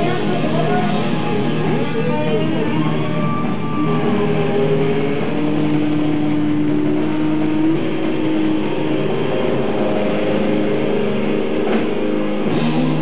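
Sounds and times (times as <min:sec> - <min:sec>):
distorted electric guitars: 0:00.0 - 0:13.0
heavy metal band playing live: 0:00.0 - 0:13.0.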